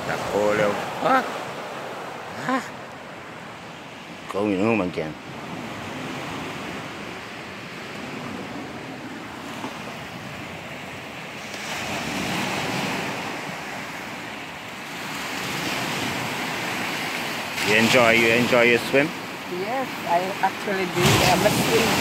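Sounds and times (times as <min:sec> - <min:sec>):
waves washing on beach: 0:00.0 - 0:22.0.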